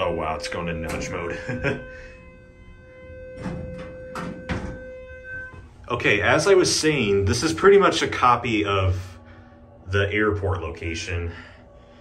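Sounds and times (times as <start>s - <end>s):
elevator door buzzer tone: 0.0s - 10.6s.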